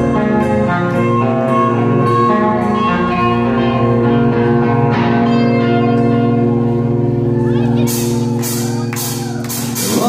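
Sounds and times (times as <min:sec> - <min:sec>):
live rock band chord ringing: 0:00.0 - 0:10.0.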